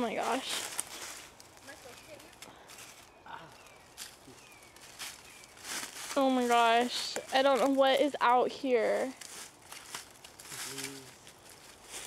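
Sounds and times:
dry leaves rustling and crackling: 0:00.0 - 0:12.0.

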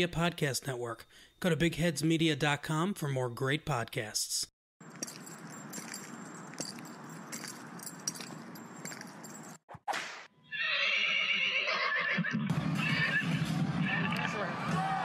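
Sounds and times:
metallic jingling and clicks: 0:04.8 - 0:09.6
horse whinnying: 0:10.5 - 0:13.4
music: 0:12.5 - 0:15.0
crowd noise: 0:12.6 - 0:15.0.

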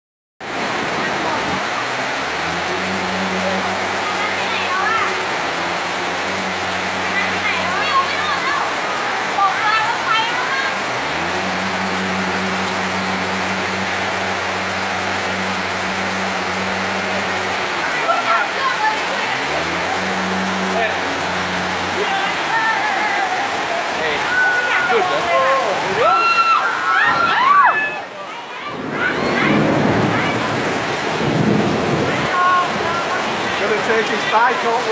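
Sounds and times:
motorcycle engine humming: 0:00.4 - 0:26.0
floodwater rushing: 0:00.4 - 0:34.9.

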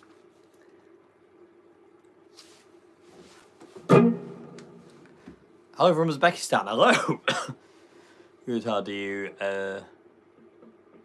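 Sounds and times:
guitar amplifier hum: 0:00.0 - 0:11.0
electric guitar chord strummed: 0:03.9 - 0:05.0.

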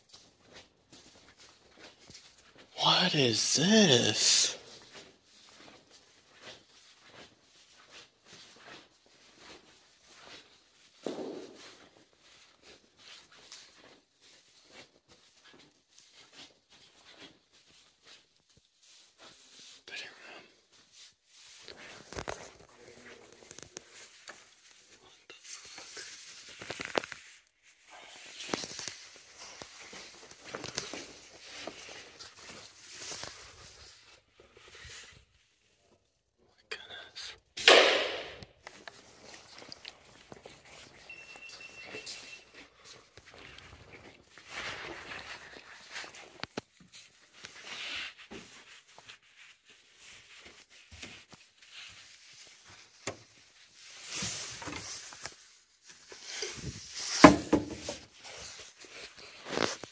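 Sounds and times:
footsteps crunching on debris: 0:00.0 - 0:02.7, 0:03.9 - 0:19.6, 0:38.1 - 0:47.4.

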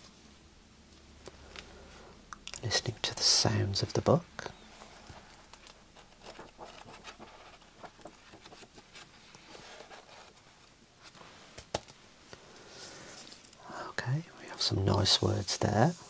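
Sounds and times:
book pages rustling: 0:04.4 - 0:13.6.

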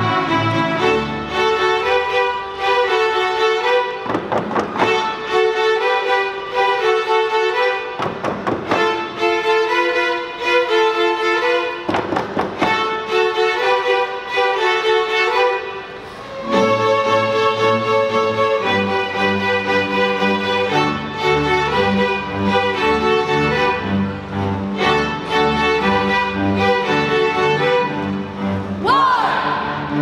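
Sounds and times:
string orchestra playing: 0:00.0 - 0:30.0.

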